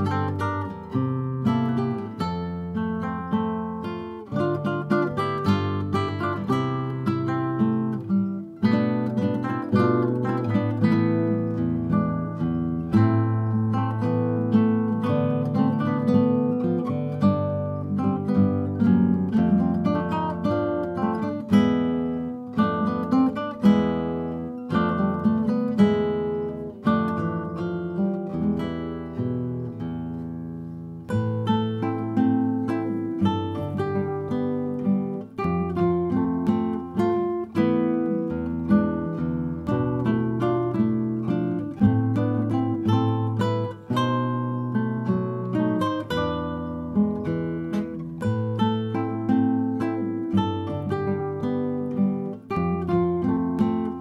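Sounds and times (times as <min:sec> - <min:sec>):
classical guitars playing: 0:00.0 - 0:54.0.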